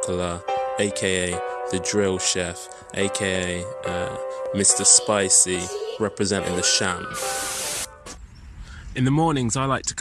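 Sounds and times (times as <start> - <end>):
steady hiss: 7.1 - 7.9
faint low rumble: 8.1 - 10.0.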